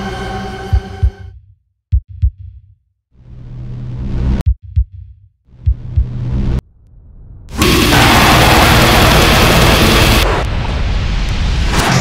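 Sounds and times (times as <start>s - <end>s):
low heartbeat thumps: 0.7s - 2.7s, 4.4s - 6.5s
held drone: 7.5s - 10.6s
sharp hit: 7.5s - 10.6s.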